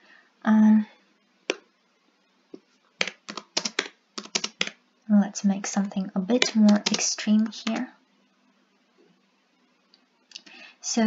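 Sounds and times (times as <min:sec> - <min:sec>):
computer keyboard typing: 0:03.0 - 0:04.8, 0:05.8 - 0:07.8.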